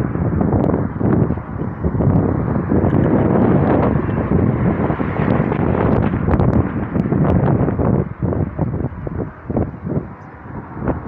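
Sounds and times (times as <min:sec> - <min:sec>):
car road and engine noise: 0:00.0 - 0:11.0
wind on microphone: 0:00.0 - 0:11.0.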